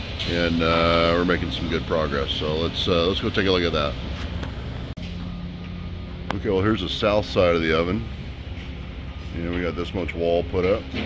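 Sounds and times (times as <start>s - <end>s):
machinery hum: 0.0s - 11.0s
steady low tone: 3.9s - 10.9s.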